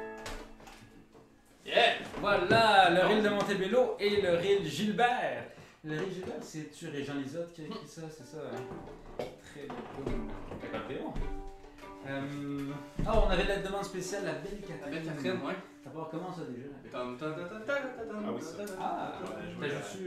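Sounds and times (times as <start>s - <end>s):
man's voice: 1.7s - 8.3s, 12.1s - 15.6s, 16.4s - 20.0s
fiddle playing quietly: 9.7s - 16.1s.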